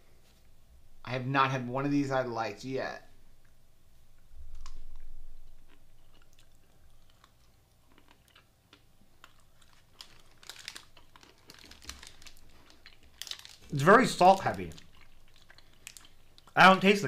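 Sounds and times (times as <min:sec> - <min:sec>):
close chewing with mouth clicks: 0:04.6 - 0:13.7, 0:14.5 - 0:16.6.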